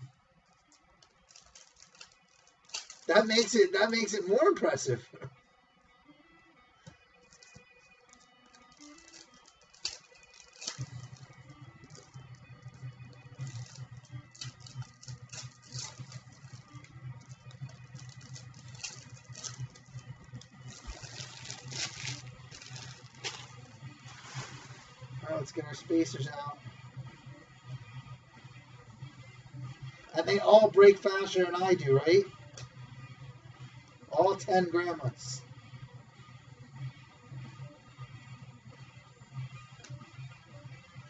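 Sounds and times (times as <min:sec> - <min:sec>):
wrapper crinkling: 0:01.1 - 0:04.3, 0:07.3 - 0:12.7, 0:13.4 - 0:25.0.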